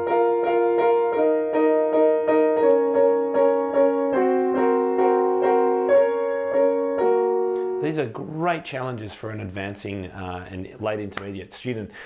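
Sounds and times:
piano chords struck repeatedly: 0.0s - 8.5s.

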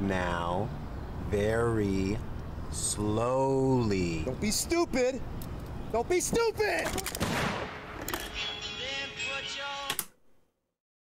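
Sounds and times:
gunshots: 7.2s - 8.0s.

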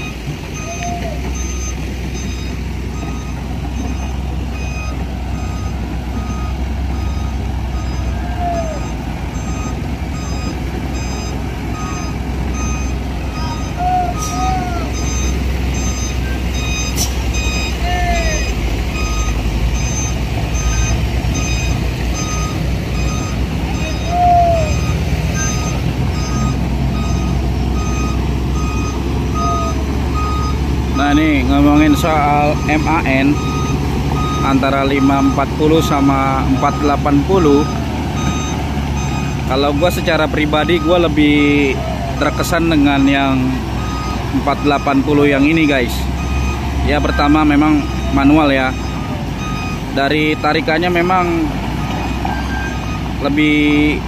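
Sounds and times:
rising and falling calls: 0.0s - 49.9s
reversing alarm beeping: 0.0s - 54.0s
truck engine rumbling: 0.0s - 54.0s.

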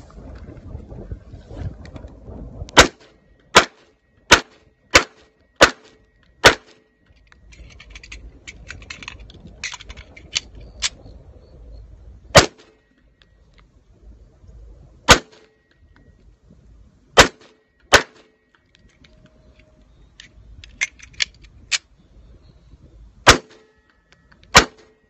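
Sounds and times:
pistol shots: 2.8s - 6.8s, 15.1s - 15.4s, 17.2s - 18.3s, 23.3s - 23.7s, 24.5s - 25.0s
metallic clicks and rattles: 7.1s - 11.0s, 18.6s - 21.9s.

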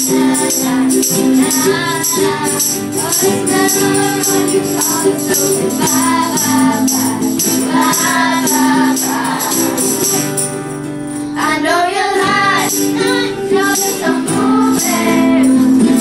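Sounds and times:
girls singing in unison: 0.0s - 10.5s, 11.4s - 16.0s
strummed ukuleles and guitars: 0.0s - 16.0s.

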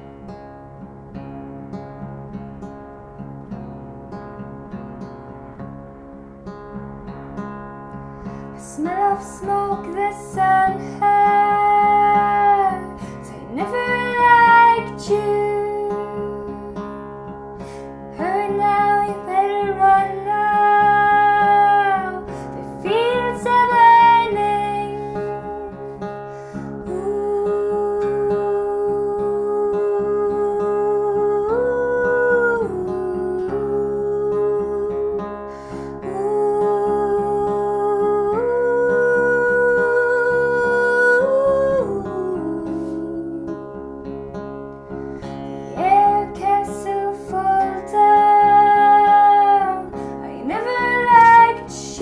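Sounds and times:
fingerpicked acoustic guitar: 0.0s - 52.0s
woman singing long notes: 8.6s - 16.8s, 18.2s - 25.7s, 26.8s - 35.4s, 36.0s - 43.8s, 45.8s - 52.0s.

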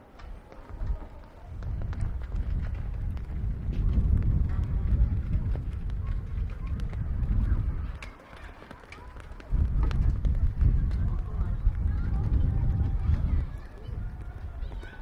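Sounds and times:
faint voices of passers-by: 0.0s - 15.0s
wind buffeting microphone: 0.0s - 15.0s.

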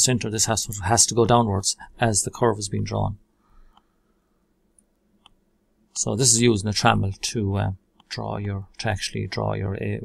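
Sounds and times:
computer mouse clicks: 4.7s - 5.4s.

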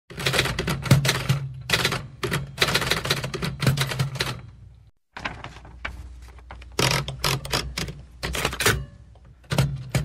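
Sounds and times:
typewriter keys clattering: 6.6s - 10.0s.

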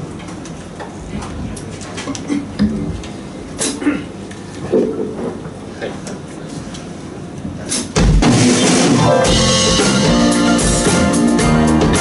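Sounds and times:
drums and bass drum: 7.8s - 12.0s
live pop band playing: 8.0s - 12.0s.

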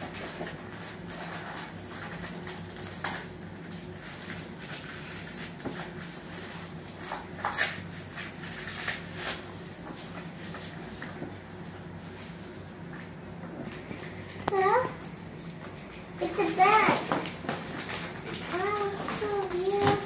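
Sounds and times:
steady low hum: 0.0s - 20.0s
tissue paper rustling: 16.2s - 20.0s.

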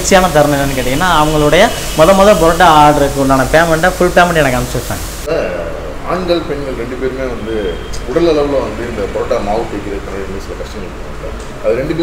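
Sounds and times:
steady hiss: 0.0s - 12.0s
man speaking: 5.3s - 12.0s.

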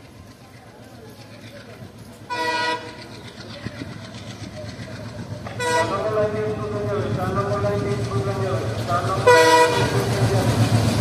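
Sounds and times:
train rumble: 0.0s - 11.0s
locomotive horn blasts: 2.3s - 2.9s, 5.6s - 6.0s, 9.2s - 10.0s.

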